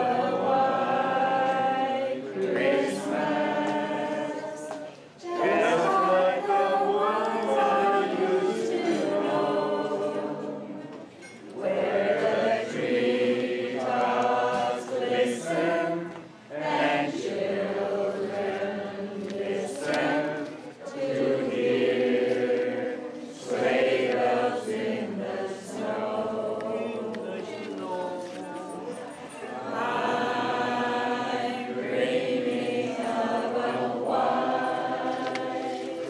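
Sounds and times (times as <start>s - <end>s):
group singing unaccompanied: 0.0s - 36.0s.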